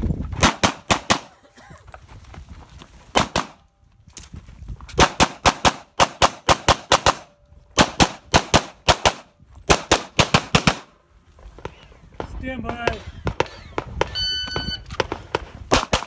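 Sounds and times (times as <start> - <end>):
pistol shots: 0.4 - 1.3, 3.2 - 3.6, 5.0 - 10.9, 15.0 - 16.0.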